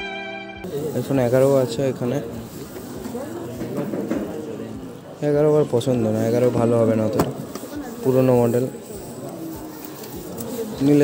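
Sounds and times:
low background murmur: 0.0 - 11.0.

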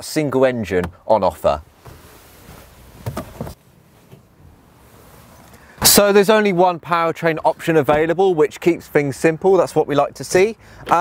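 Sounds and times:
faint outdoor background: 0.0 - 11.0
rustles and bumps in a car seat: 0.7 - 5.5.

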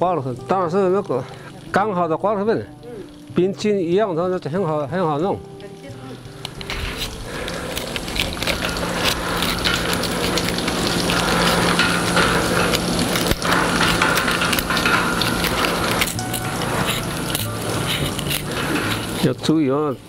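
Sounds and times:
knife shaving cane strips: 6.3 - 20.0
low hum: 6.4 - 19.2.

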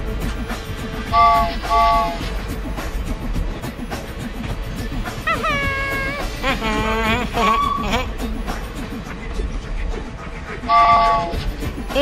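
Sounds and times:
soft background music: 0.0 - 12.0
cartoon train whistle: 1.1 - 2.2, 5.3 - 8.2, 10.7 - 11.4.

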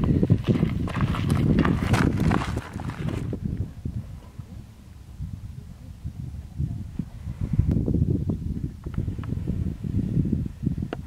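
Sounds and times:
footsteps on gravel trail: 0.0 - 3.4.

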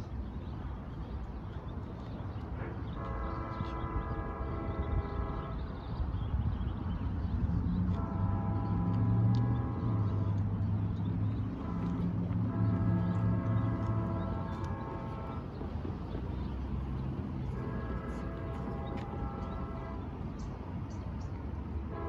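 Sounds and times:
distant train air horn blasts: 2.6 - 5.8, 7.9 - 20.4
diesel engines rumbling: 6.7 - 22.0.

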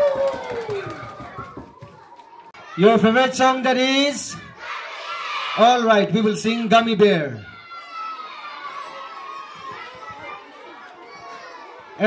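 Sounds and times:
children chattering and calling out: 4.3 - 5.6, 7.4 - 12.0.

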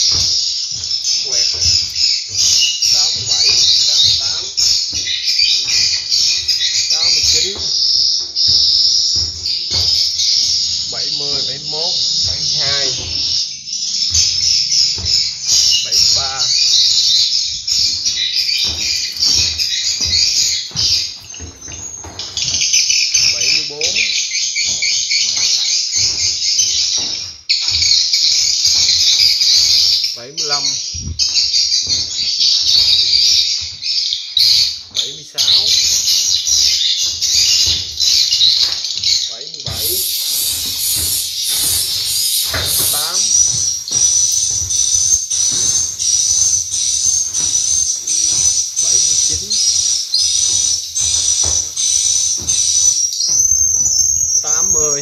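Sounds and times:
bird chirping over loudspeakers: 0.0 - 55.0.

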